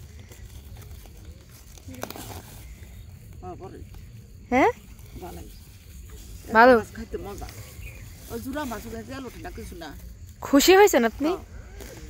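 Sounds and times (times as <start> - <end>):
quiet talking: 0.0 - 12.0.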